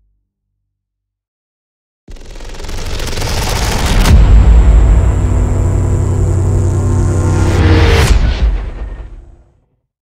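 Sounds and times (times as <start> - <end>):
loud boom hit with echo: 3.8 - 9.5.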